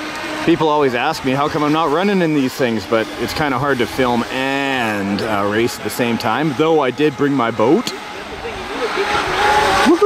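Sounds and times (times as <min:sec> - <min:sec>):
high motor whine: 0:00.0 - 0:10.0.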